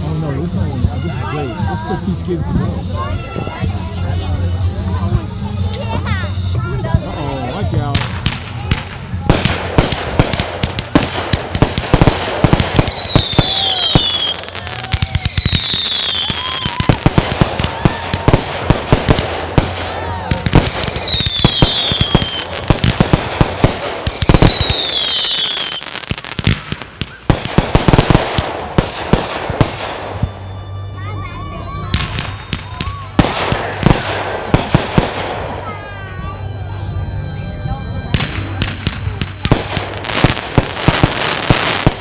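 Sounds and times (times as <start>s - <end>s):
fireworks bangs and crackles: 0.0s - 36.2s, 38.0s - 42.0s
descending firework whistles: 11.9s - 35.9s.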